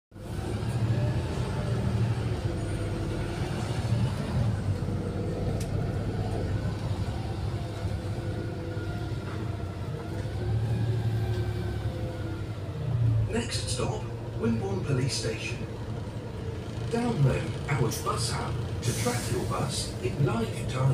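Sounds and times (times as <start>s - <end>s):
bus interior drone: 0.1s - 20.9s.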